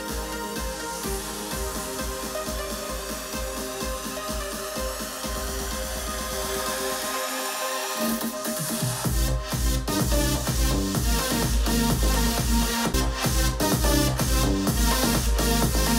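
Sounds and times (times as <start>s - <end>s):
pulsing bass beat: 0.0s - 7.2s, 8.1s - 15.9s
electronic dance music: 0.0s - 15.9s.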